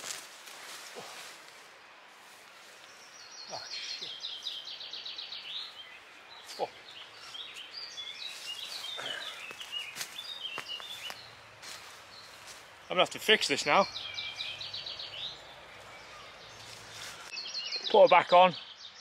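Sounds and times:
songbirds singing: 0:00.0 - 0:19.0.

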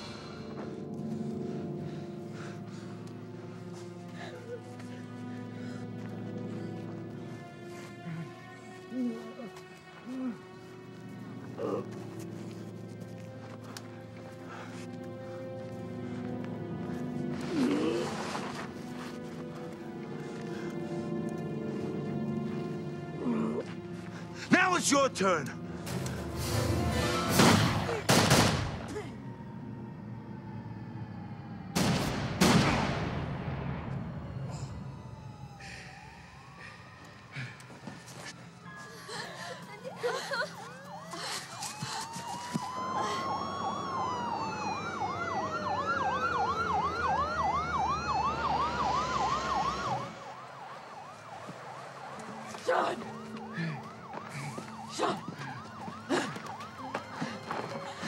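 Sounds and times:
police sirens wailing: 0:00.2 - 0:58.0
siren yelp: 0:28.7 - 0:31.8, 0:33.7 - 0:58.0.

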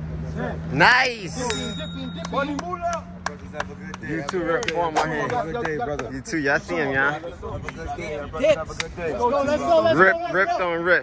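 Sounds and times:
men talking: 0:00.2 - 0:11.0.

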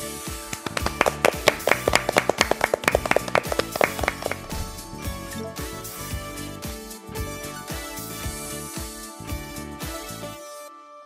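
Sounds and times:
background music: 0:00.0 - 0:11.0
people clapping: 0:00.4 - 0:05.0.

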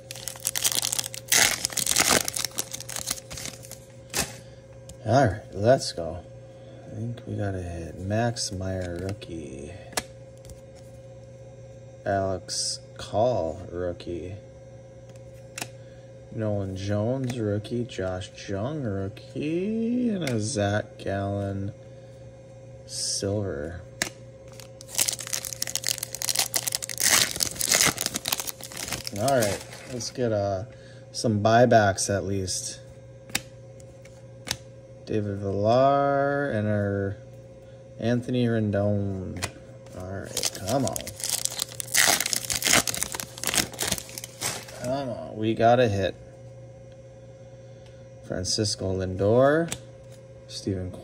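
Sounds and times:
foil wrapper crinkling and tearing: 0:00.0 - 0:04.4, 0:24.5 - 0:30.2, 0:40.2 - 0:44.9.

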